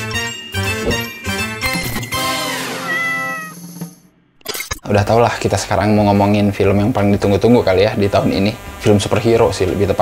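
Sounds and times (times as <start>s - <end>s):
cat meowing: 2.7s - 3.6s.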